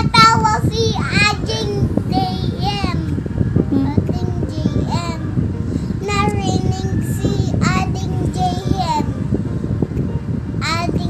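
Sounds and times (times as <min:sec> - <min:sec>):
boy's sing-song voice: 0:00.0 - 0:05.4, 0:06.0 - 0:09.1, 0:10.6 - 0:11.0.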